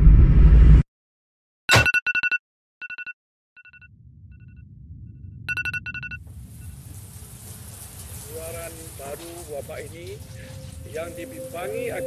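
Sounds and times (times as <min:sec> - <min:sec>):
low rumble: 0:00.0 - 0:00.8, 0:03.9 - 0:12.0
electronic alarm beeping: 0:05.5 - 0:06.8
shower running: 0:06.3 - 0:12.0.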